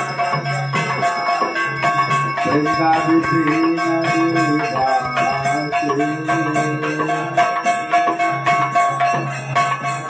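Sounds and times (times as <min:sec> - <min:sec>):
temple bells ringing: 0:00.0 - 0:10.0.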